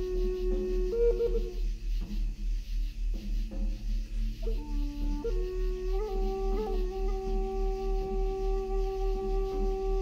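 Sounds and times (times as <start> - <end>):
wooden flute notes: 0.0 - 1.8, 4.4 - 10.0
cicadas hissing: 0.0 - 10.0.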